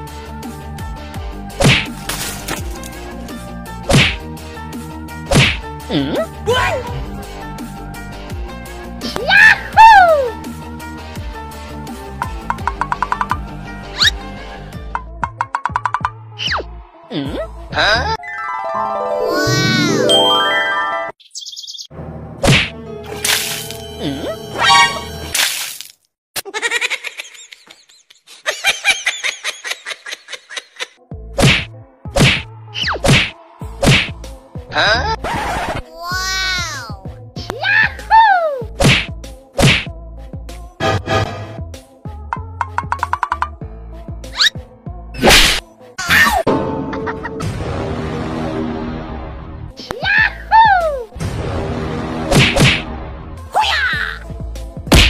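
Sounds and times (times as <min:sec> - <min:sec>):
background music: 0:00.0 - 0:21.2, 0:21.9 - 0:25.4, 0:31.0 - 0:55.0
punch sound effects: 0:01.6 - 0:01.9, 0:03.9 - 0:04.2, 0:05.3 - 0:05.6, 0:22.4 - 0:22.8, 0:31.4 - 0:34.2, 0:38.8 - 0:39.9, 0:45.2 - 0:45.6, 0:51.2 - 0:53.1.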